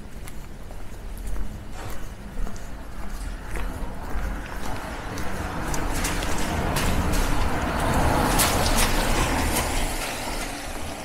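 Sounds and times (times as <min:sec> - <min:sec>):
footsteps on wet pavement: 0:00.0 - 0:11.0.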